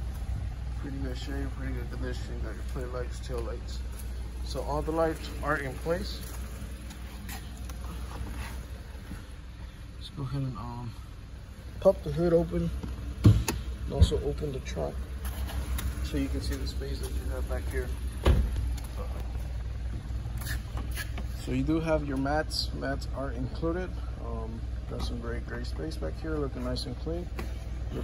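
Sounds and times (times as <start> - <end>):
faint handling clicks and rustles: 0.0 - 10.0, 12.0 - 22.6
car engine idling: 0.0 - 28.0
steady low hum: 0.0 - 28.0.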